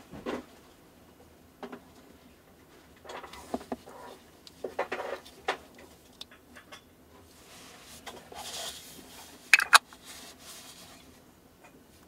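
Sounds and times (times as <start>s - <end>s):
gloves rubbing on lens barrel: 9.6s - 9.8s
sharp clicks: 9.6s - 9.8s.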